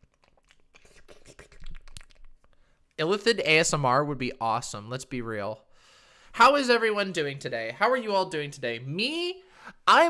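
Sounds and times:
mouth clicking and crackling: 0.0 - 3.0.

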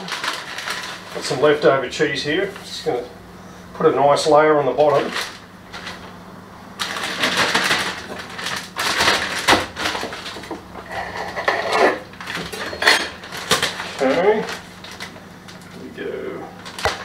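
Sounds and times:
plastic packaging crinkling: 0.0 - 2.4, 4.8 - 6.2, 6.8 - 17.0.

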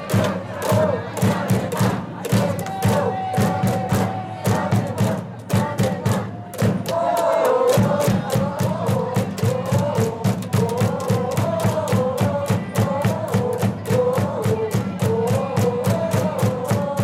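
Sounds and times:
crowd chanting and shouting: 0.0 - 17.0
fast rhythmic clapping: 0.0 - 17.0
low thumping beats: 0.0 - 17.0.

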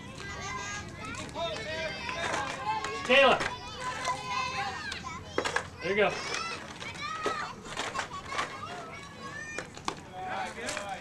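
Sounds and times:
girls calling and chattering: 0.0 - 11.0.

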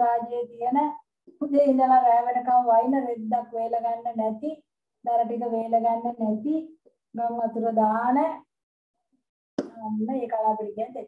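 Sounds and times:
woman speaking: 0.0 - 8.5, 9.6 - 11.0
sharp pop: 9.6 - 9.8.

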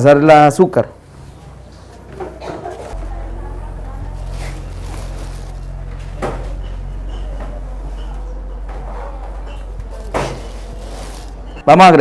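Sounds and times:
low machine hum: 0.9 - 11.7.

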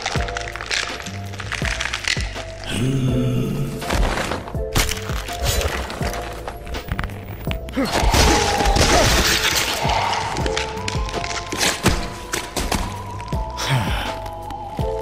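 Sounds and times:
dramatic background score: 0.0 - 15.0.

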